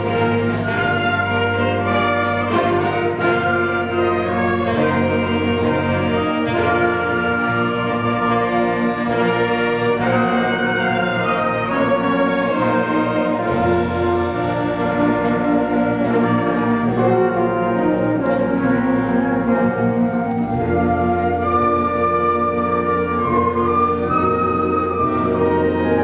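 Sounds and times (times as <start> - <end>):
concert band playing chords: 0.0 - 26.0.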